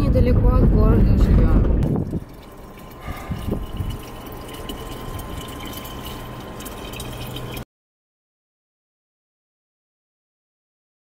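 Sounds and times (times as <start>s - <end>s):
pump humming: 1.6s - 7.6s
water pouring into plastic bottle: 1.8s - 7.6s.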